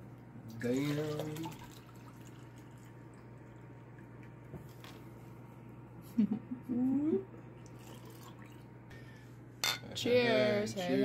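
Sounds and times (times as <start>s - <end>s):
juice pouring into a glass: 0.6s - 4.5s, 7.6s - 8.7s.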